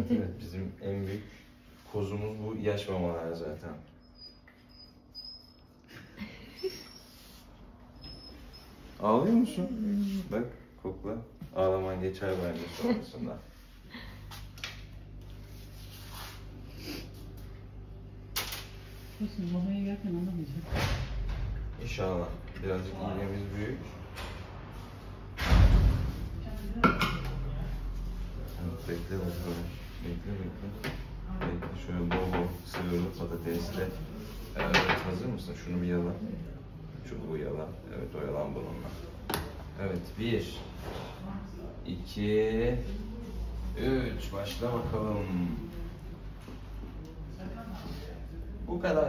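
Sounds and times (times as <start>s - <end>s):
dog whimpering: 4.0s - 7.3s
heavy thump: 25.4s - 26.4s.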